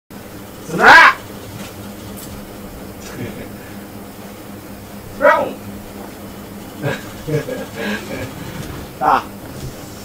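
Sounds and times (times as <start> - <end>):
loud high-pitched cry: 0.7 - 1.2, 5.2 - 5.6.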